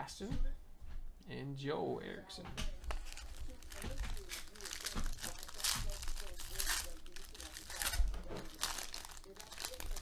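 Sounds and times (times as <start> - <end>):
foil wrapper crinkling: 2.8 - 10.0.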